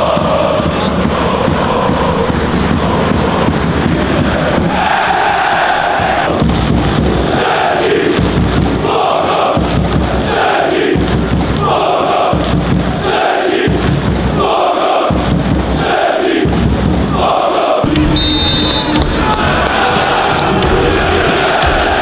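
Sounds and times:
crowd chanting: 0:00.0 - 0:22.0
low beat: 0:00.0 - 0:22.0
rhythmic clapping: 0:00.0 - 0:22.0.

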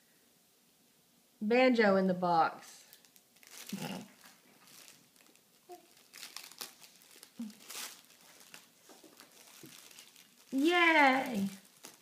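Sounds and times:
foil gift wrap crinkling: 0:02.8 - 0:12.0.

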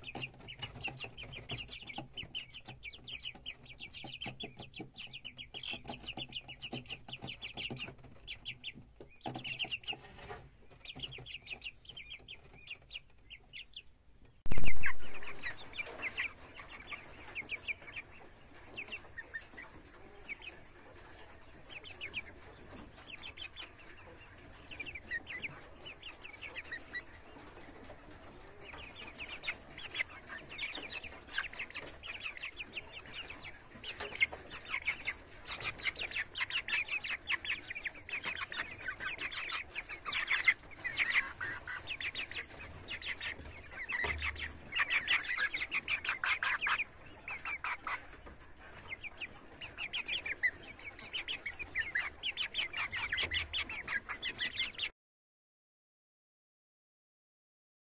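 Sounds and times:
chicks peeping and clucking: 0:00.0 - 0:54.9.

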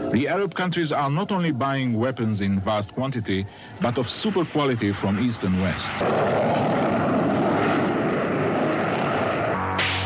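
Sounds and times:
jet fighter engine: 0:03.4 - 0:10.0.

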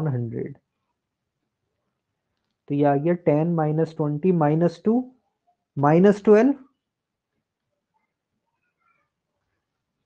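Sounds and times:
faint high-pitched sounds: 0:02.7 - 0:10.0.

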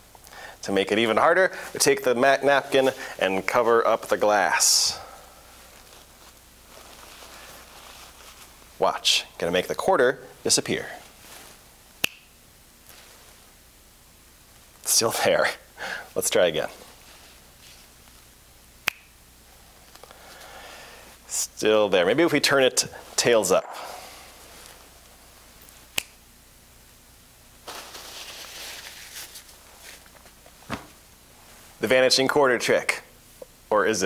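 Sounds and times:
paper napkin crumpling: 0:05.5 - 0:08.7, 0:27.6 - 0:31.7
finger snap: 0:12.0 - 0:12.3, 0:18.8 - 0:19.2, 0:25.9 - 0:26.2.

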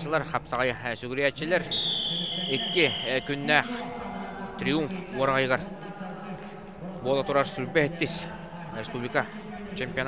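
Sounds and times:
man commentating: 0:01.4 - 0:05.7
timer buzzer long tone: 0:01.8 - 0:04.5.

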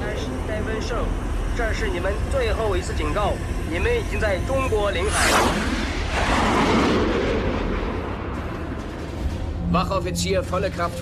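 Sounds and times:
steady low drone: 0:00.0 - 0:11.0
fighter jet passing overhead: 0:05.0 - 0:09.1.

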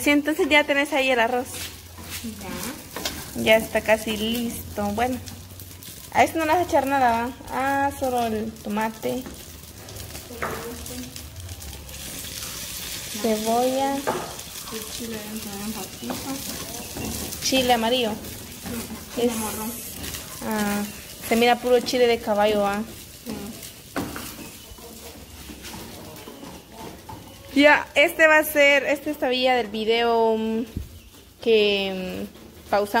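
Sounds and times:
rice and tomato sizzling in oil: 0:00.0 - 0:33.0.

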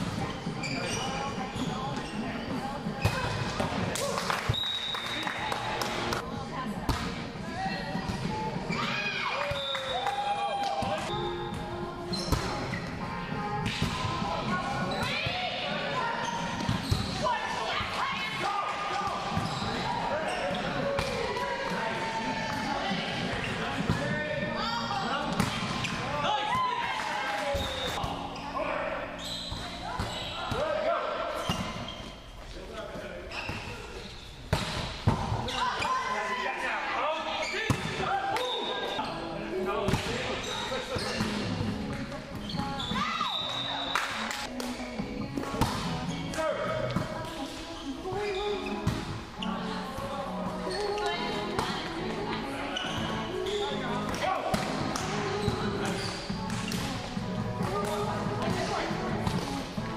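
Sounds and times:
players shouting and chatter: 0:00.0 - 0:59.9.

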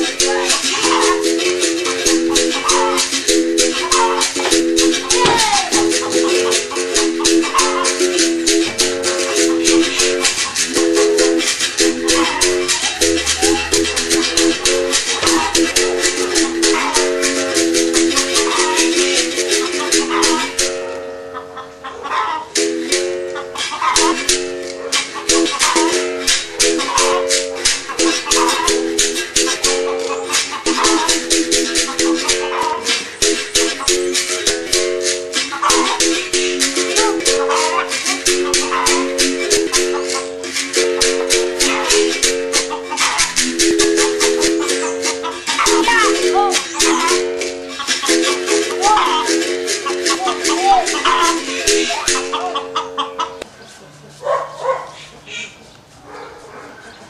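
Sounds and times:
shaker rattling: 0:00.0 - 0:20.8, 0:22.8 - 0:52.6
berimbau playing: 0:00.0 - 0:54.1.

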